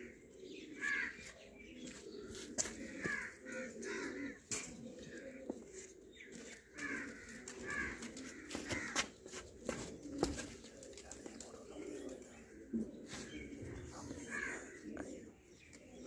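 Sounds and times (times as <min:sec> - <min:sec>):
pigeons cooing: 0:00.0 - 0:16.0.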